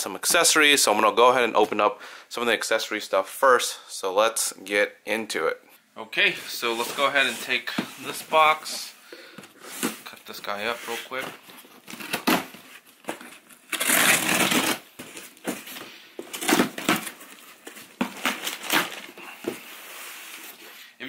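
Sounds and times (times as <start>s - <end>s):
cutting tape and cardboard: 13.7s - 14.8s.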